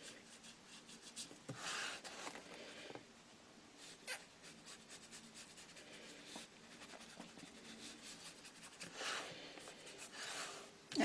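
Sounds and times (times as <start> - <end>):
brush rubbing on paper: 4.0 - 10.7.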